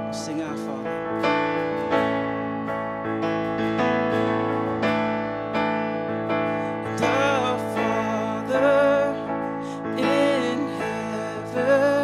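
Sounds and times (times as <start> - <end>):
acoustic guitar strummed: 0.0 - 12.0
digital piano sustained chords: 0.0 - 12.0.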